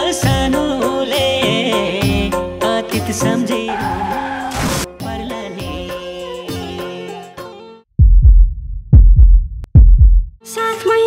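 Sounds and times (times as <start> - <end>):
deep bass booms sliding down: 8.0 - 10.4.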